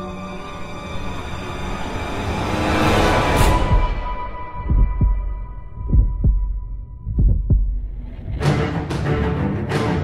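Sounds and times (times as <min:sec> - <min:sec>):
heartbeat thumps: 0:03.6 - 0:08.5.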